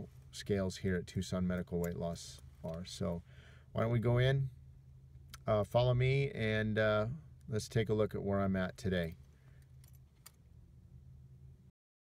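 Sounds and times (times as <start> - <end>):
car cabin hum: 0.0 - 11.2.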